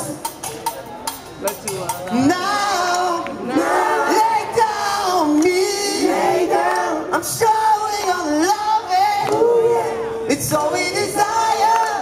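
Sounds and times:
sharp clicky percussion hits: 0:00.2 - 0:02.2.

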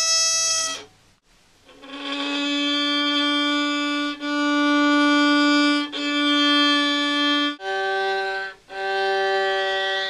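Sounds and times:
violin long held notes: 0:01.7 - 0:10.0.

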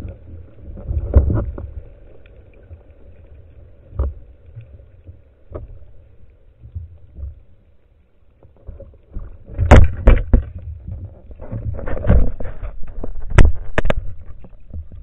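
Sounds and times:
muffled underwater rumble: 0:00.0 - 0:15.0
knocks and scrapes on camera housing: 0:11.4 - 0:14.2.

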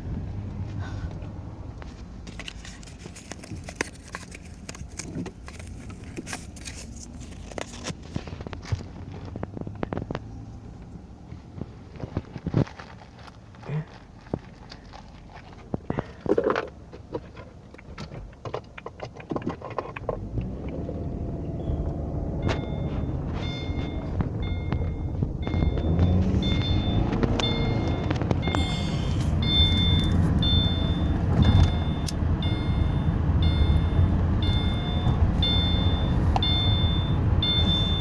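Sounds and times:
car engine and road rumble: 0:00.0 - 0:38.0
high electronic beep: 0:21.6 - 0:38.0.

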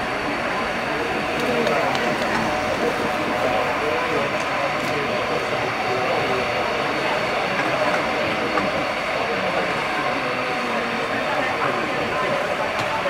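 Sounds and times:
crowd noise: 0:00.0 - 0:13.0
indistinct voices: 0:00.0 - 0:13.0.

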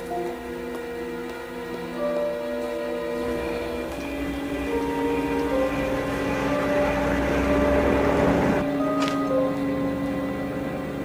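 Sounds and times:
orchestral score sustained notes: 0:00.0 - 0:11.0.

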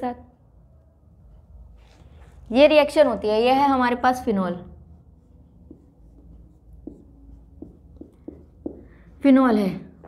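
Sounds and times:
marker pen strokes on whiteboard: 0:05.0 - 0:09.4.

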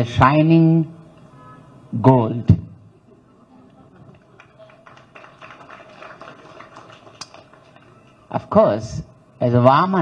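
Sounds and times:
audience murmur: 0:02.8 - 0:08.3
scattered hand claps: 0:04.0 - 0:08.4.

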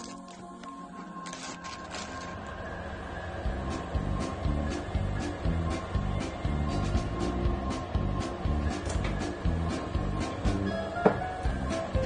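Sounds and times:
cardboard crinkling: 0:00.0 - 0:02.5
plastic bag rustling: 0:00.0 - 0:02.6
background music: 0:00.0 - 0:12.0.

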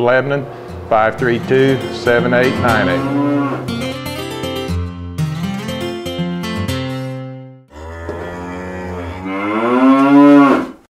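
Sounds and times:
cow mooing: 0:01.2 - 0:03.9, 0:07.7 - 0:10.9.

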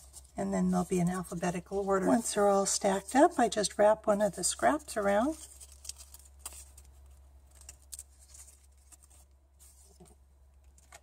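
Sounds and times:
paper rustling: 0:00.0 - 0:03.6, 0:05.0 - 0:11.0.

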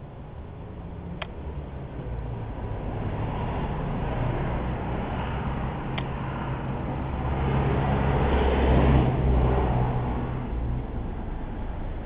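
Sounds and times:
low engine hum: 0:00.0 - 0:12.0
motor vehicle passing: 0:00.0 - 0:12.0.

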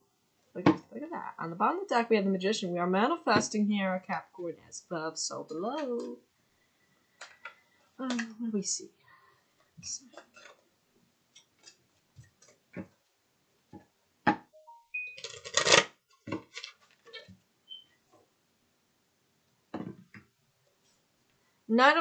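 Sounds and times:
cards being shuffled: 0:15.2 - 0:17.2.

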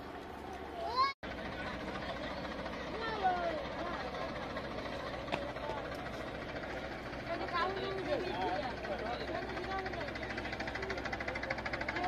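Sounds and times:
engine running with knocking beat: 0:01.2 - 0:12.0.

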